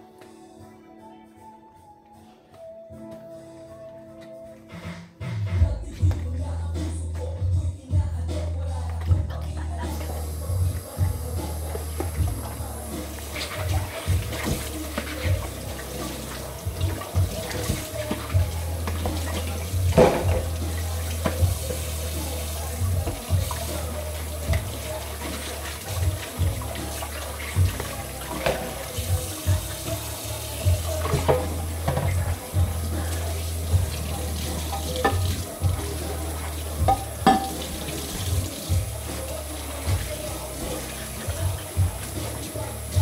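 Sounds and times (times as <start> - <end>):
background music: 0.0 - 43.0
tap water running into sink: 9.9 - 43.0
crockery and utensils clinking: 11.4 - 30.1, 30.9 - 38.4.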